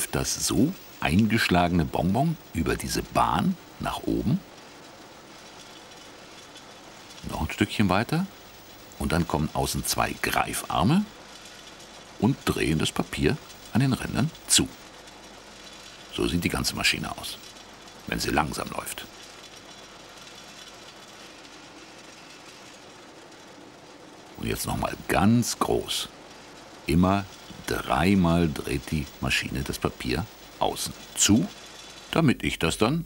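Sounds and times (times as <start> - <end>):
wrapping machine running: 0.0 - 33.0.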